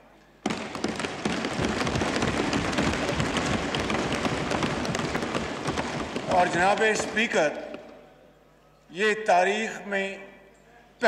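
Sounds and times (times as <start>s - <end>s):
applause and desk thumping: 0.4s - 7.8s.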